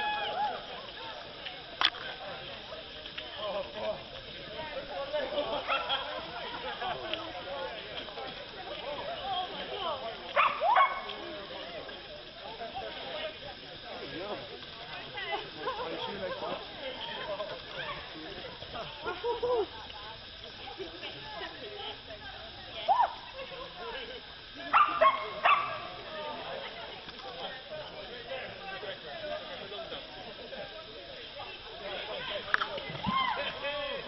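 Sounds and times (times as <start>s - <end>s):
background chatter: 0.0s - 34.0s
dog barking: 10.4s - 11.1s, 24.7s - 25.8s.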